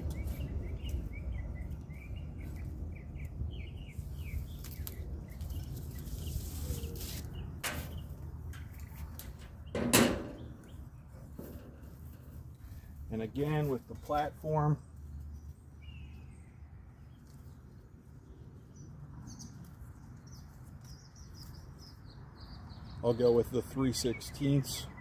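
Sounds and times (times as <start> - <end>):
small birds chirping: 0.0 - 25.0.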